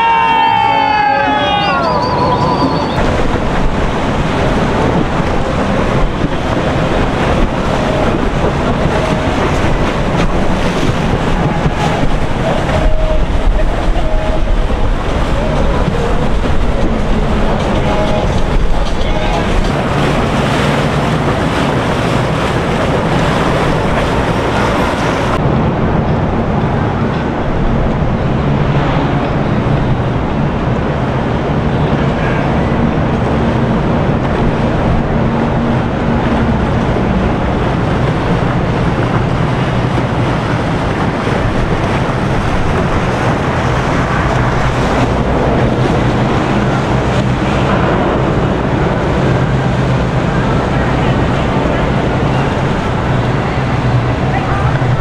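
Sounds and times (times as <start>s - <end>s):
faint voices: 0.0s - 25.4s, 31.5s - 55.0s
boat engines running: 0.0s - 55.0s
water noise: 0.0s - 55.0s.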